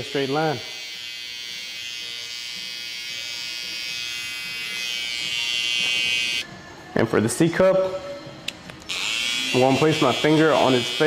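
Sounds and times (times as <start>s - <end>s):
electric hair trimmer buzzing: 0.0s - 6.4s, 8.9s - 11.0s.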